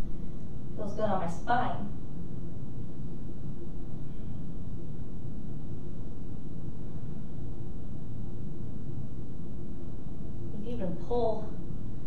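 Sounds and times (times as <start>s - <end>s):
low rumbling room hum: 0.0s - 12.0s.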